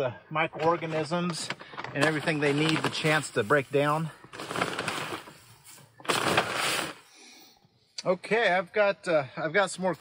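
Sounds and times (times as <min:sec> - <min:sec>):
shredded paper rustling: 0:02.0 - 0:05.4.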